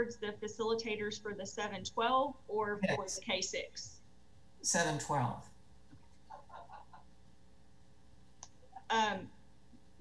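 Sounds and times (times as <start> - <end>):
faint distant voice: 2.8 - 3.1.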